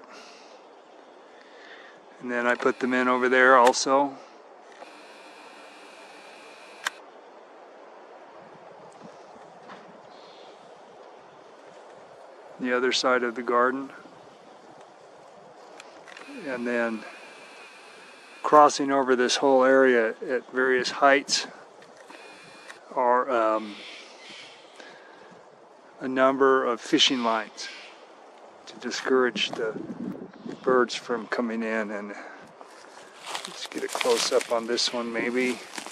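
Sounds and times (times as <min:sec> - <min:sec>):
outdoor hiss: 0:00.0 - 0:29.7, 0:31.0 - 0:35.9
sharp click: 0:06.6 - 0:07.0.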